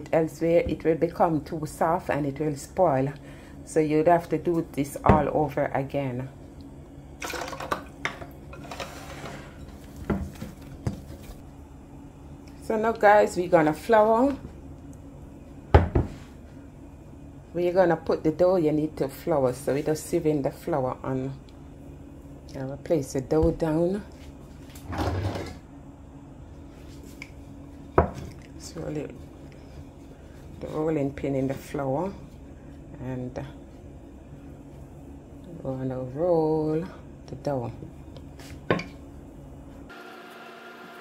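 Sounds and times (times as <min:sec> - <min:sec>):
faint steady hum: 0:00.0 - 0:39.9
dough thud on countertop: 0:15.7 - 0:16.2.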